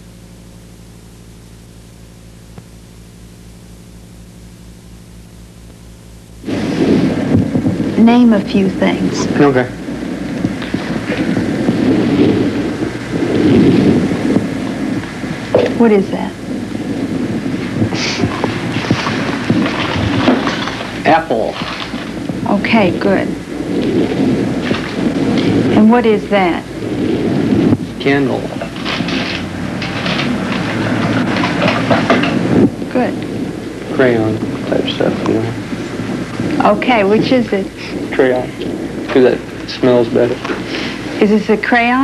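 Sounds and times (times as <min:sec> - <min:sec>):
crackle: 0:00.0 - 0:42.0
film soundtrack hiss: 0:00.0 - 0:42.0
low rumbling noise: 0:00.0 - 0:42.0
mains hum: 0:00.0 - 0:42.0.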